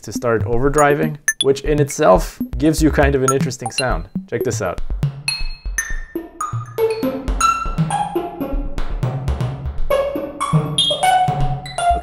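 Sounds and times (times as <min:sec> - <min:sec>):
drums and percussion with distorted reverb: 0:00.0 - 0:08.0, 0:08.7 - 0:09.9.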